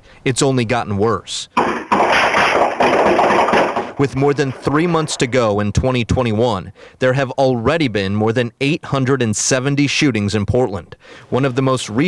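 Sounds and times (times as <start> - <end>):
rapid gunshots: 1.6 - 5.5.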